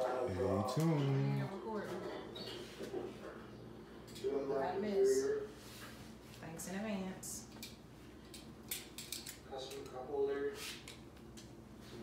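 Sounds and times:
person speaking: 0.2 - 1.5.

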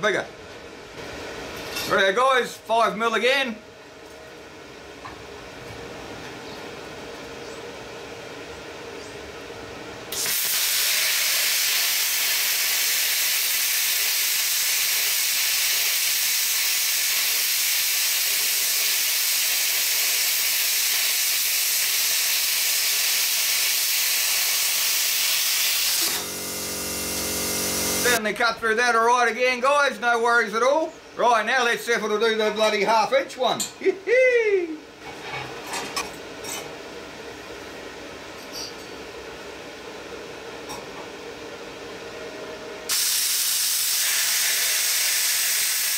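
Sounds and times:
plasma cutter hissing: 10.1 - 28.2, 42.9 - 45.9.

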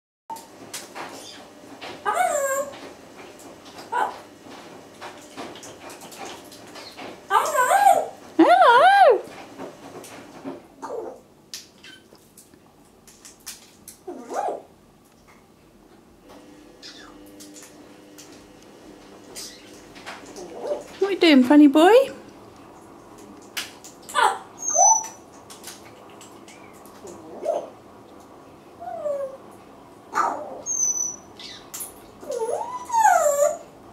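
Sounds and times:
parrot warbling calls: 2.0 - 2.7, 24.1 - 25.2, 30.1 - 31.6.

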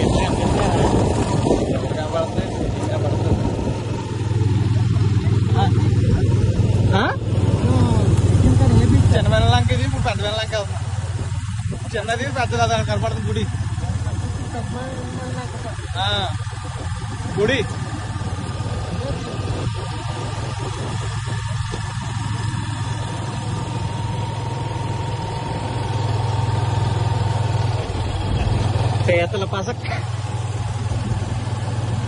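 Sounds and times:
wind noise: 0.0 - 12.2, 14.9 - 24.0, 30.1 - 32.0
motorcycle engine cruising: 0.0 - 32.0
road noise: 0.0 - 32.0.

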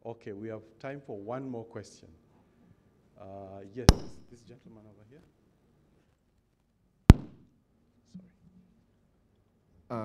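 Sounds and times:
thump on microphone: 3.9 - 4.2, 7.1 - 7.4.

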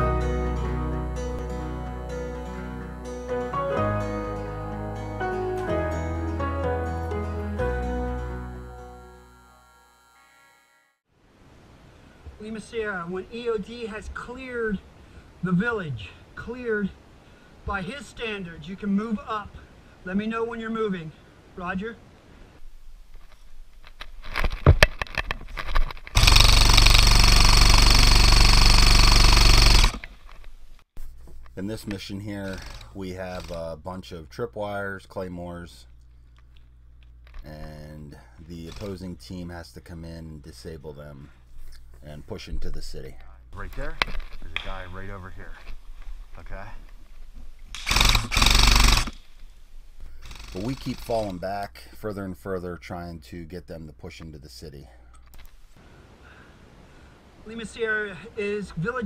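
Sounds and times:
airsoft rifle full-auto burst: 26.2 - 30.1, 32.5 - 33.6, 38.7 - 39.1, 47.7 - 49.3, 50.2 - 51.3.

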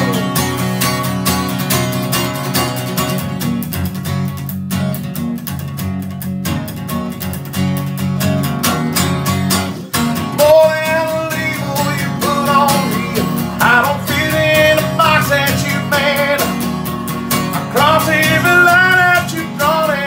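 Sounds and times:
man singing country song: 0.0 - 0.7, 9.8 - 20.0
strummed acoustic guitar: 0.0 - 20.0.

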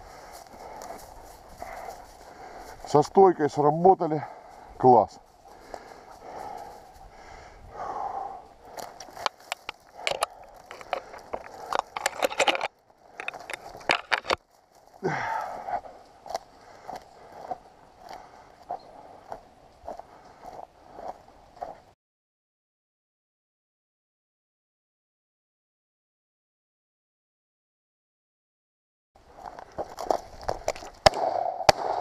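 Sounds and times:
twigs scraping and crackling: 8.6 - 20.5, 29.3 - 31.8
twigs snapping: 8.7 - 15.0, 29.4 - 31.9.

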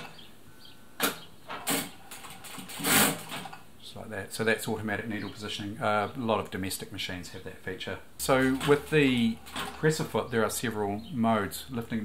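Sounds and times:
sewing machine stitching: 1.6 - 3.6.

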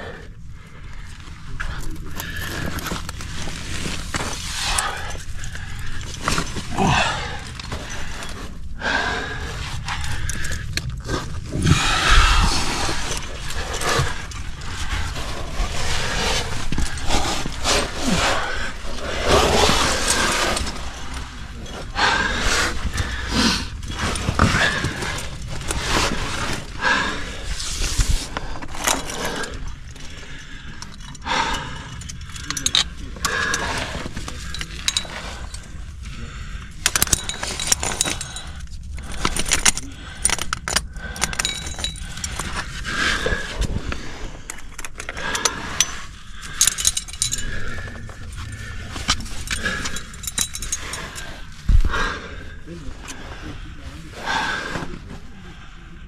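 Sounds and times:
metal climbing gear clinking: 0.0 - 53.9.

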